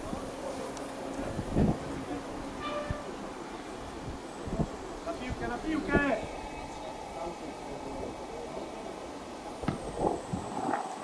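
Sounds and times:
low wind gust: 0:00.0 - 0:11.0
wind buffeting microphone: 0:00.0 - 0:11.0.

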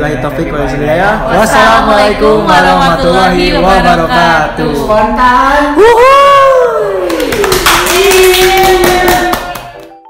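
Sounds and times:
people clapping: 0:06.8 - 0:10.0.

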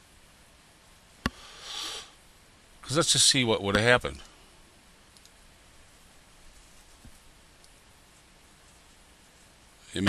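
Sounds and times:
person speaking: 0:02.8 - 0:04.3
computer mouse click: 0:05.1 - 0:05.4.

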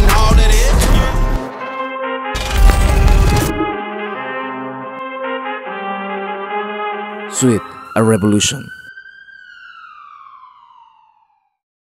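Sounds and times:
siren-like tone sliding down: 0:07.6 - 0:11.6.

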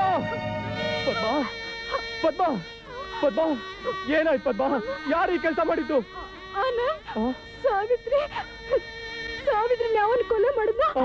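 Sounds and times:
man sobbing and crying out: 0:00.0 - 0:09.2
background music held tone: 0:00.0 - 0:11.0.

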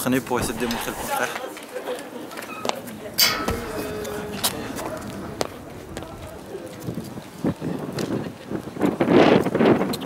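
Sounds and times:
thud of landing: 0:03.2 - 0:06.7.

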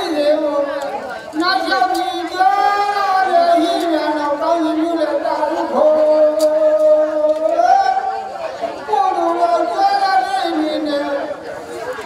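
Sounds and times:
voice reciting over loudspeaker: 0:00.0 - 0:12.0.

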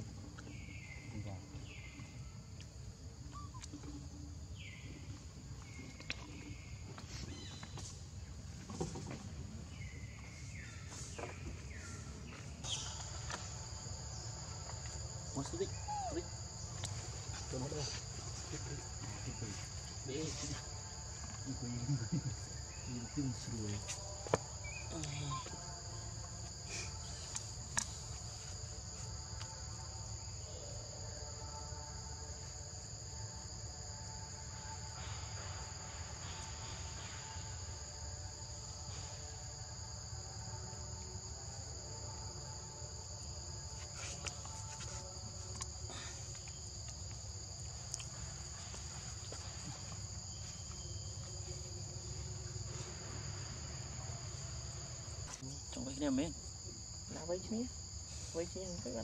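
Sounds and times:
forest insects chorus: 0:00.0 - 0:59.0.

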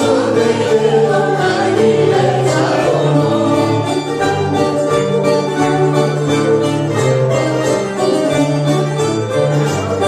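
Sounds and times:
voices singing together: 0:00.0 - 0:05.1
acoustic guitar: 0:00.0 - 0:10.0
baglamas: 0:00.0 - 0:10.0
plucked bouzouki: 0:00.0 - 0:10.0.

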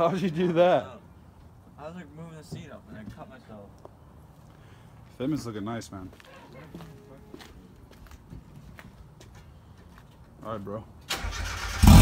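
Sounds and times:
footsteps on concrete: 0:02.4 - 0:10.6.

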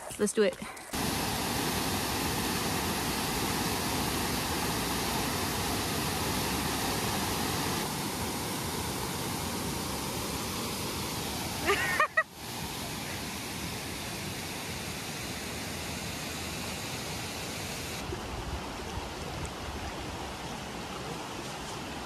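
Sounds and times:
waterfall rushing: 0:01.0 - 0:18.1.

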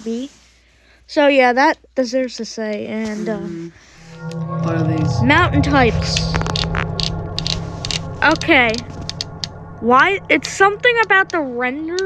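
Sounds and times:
low hum: 0:03.8 - 0:12.0.

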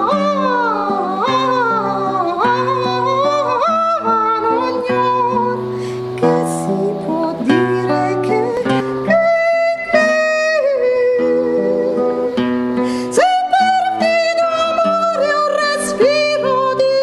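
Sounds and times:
classical guitar plucked: 0:00.0 - 0:17.0
woman singing: 0:00.0 - 0:17.0.

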